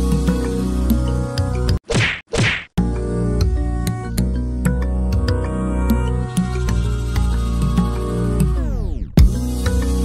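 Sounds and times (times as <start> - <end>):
background music: 0.0 - 1.8, 2.8 - 10.0.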